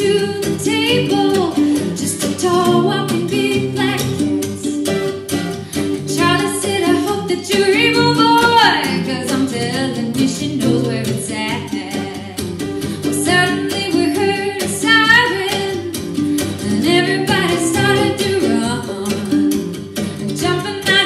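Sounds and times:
woman singing: 0:00.0 - 0:05.1, 0:05.7 - 0:21.0
mandolin: 0:00.0 - 0:21.0
strummed acoustic guitar: 0:00.0 - 0:21.0.

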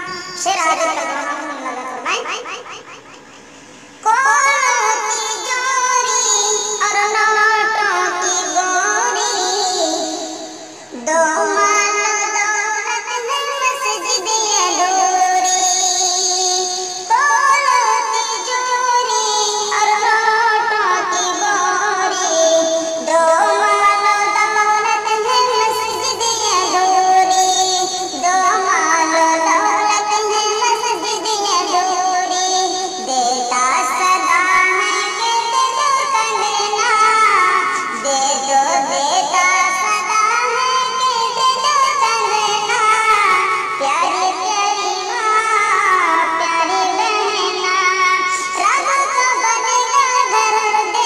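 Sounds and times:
person singing slow melody: 0:01.4 - 0:45.3.

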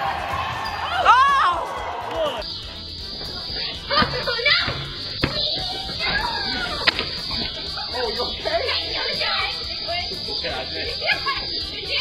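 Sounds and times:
voices: 0:00.0 - 0:12.0
basketball bouncing on driveway: 0:03.1 - 0:07.4.

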